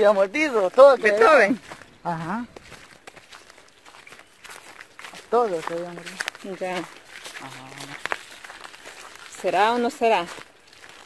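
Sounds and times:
footsteps on dry leaves: 0.0 - 11.0.

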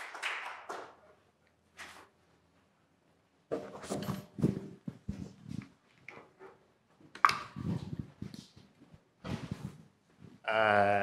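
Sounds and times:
knocks and scrapes of stools: 3.5 - 6.6.

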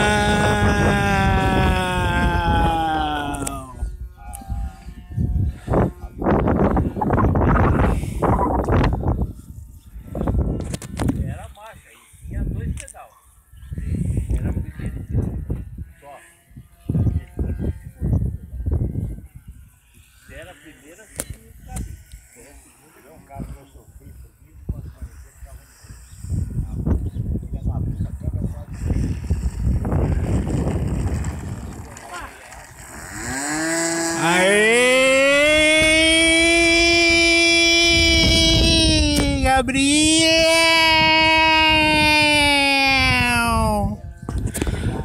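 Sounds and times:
model airplane engine revving: 0.0 - 7.1, 28.5 - 39.4
wind buffeting microphone: 0.0 - 12.8, 13.5 - 20.4, 23.3 - 45.0
person talking indistinctly: 34.1 - 44.0.

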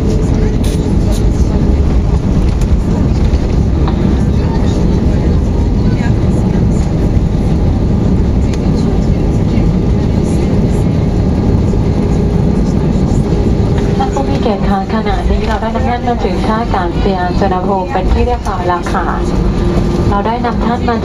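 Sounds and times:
aircraft engines rumbling: 0.0 - 21.0.

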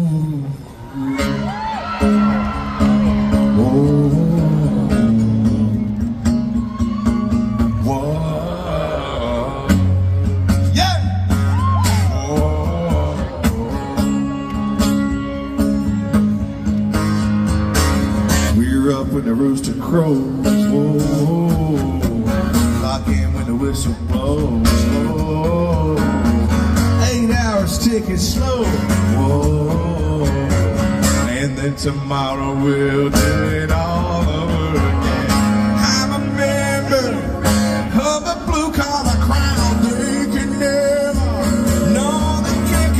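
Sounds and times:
live country band with guitar: 0.0 - 42.9.

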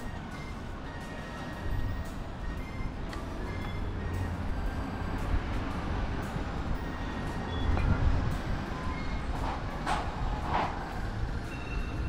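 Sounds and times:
low rumble of traffic: 0.0 - 12.0.

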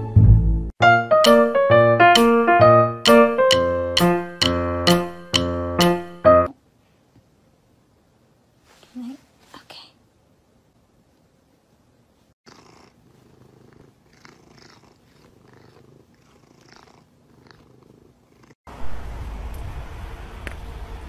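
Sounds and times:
cat purring: 12.5 - 18.6.

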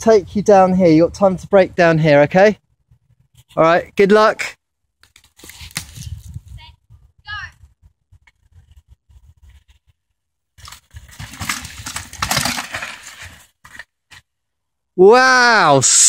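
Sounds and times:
bike tyres rattling over rocks: 10.6 - 14.3.

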